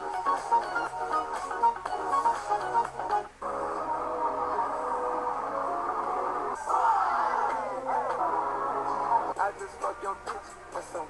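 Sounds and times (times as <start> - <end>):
music with sliding pitches: 0.0 - 11.0.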